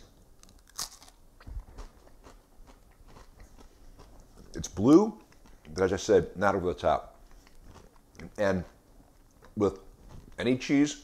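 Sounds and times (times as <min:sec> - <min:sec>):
cracker crunching: 0:00.3 - 0:10.5
chewing: 0:00.4 - 0:06.1, 0:07.1 - 0:10.4.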